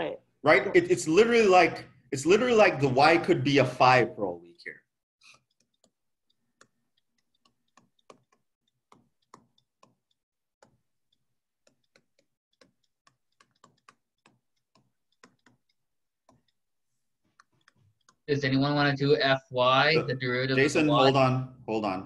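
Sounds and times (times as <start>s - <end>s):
faint irregular clicks: 5.2s - 18.3s.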